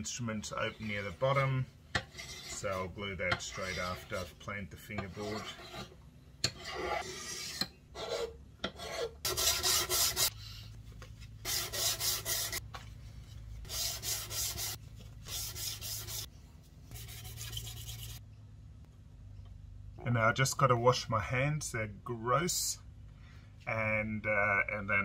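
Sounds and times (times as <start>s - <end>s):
hand plane scraping wood: 2.0s - 4.3s, 4.9s - 5.9s, 6.5s - 10.3s, 11.4s - 12.6s, 13.7s - 16.3s.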